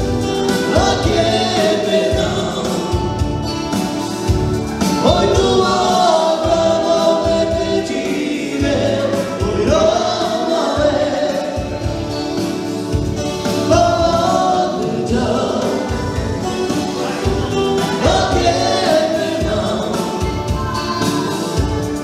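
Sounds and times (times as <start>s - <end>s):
person singing: 0.0s - 12.6s, 13.4s - 22.0s
electric guitars: 0.0s - 22.0s
keyboard: 0.0s - 22.0s
saxophone: 0.0s - 22.0s.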